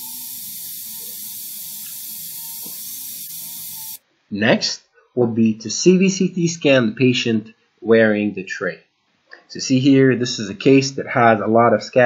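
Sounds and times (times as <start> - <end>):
steady hiss: 0.0 - 4.5.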